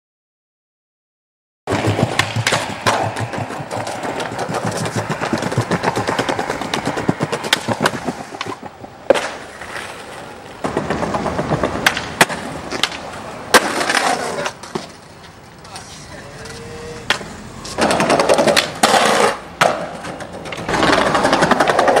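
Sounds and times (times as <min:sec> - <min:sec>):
skateboard clacks: 0:01.7 - 0:22.0
skateboard wheels rolling on pavement: 0:01.7 - 0:22.0.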